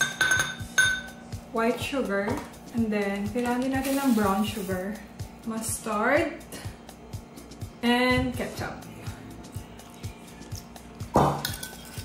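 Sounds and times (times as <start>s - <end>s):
metal spoon clinking on ceramic: 0.0s - 1.1s, 11.4s - 12.0s
background music with beat: 0.0s - 12.0s
spoon clatter: 11.4s - 12.0s.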